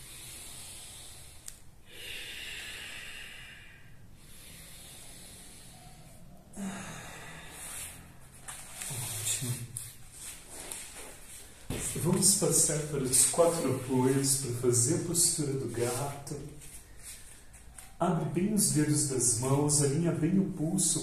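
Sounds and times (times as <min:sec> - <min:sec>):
man breathing deeply through nose: 0:00.0 - 0:08.4.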